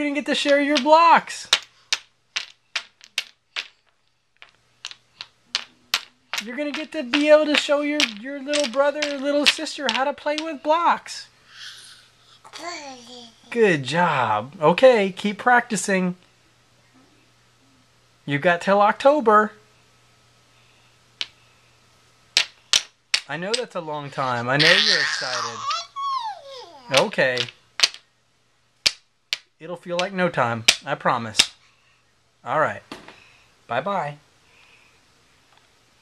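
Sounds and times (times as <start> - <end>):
faint steady hum: 0.0 - 36.0
toy blocks clacking: 0.3 - 10.7, 22.4 - 23.9, 24.6 - 26.0, 26.8 - 28.0.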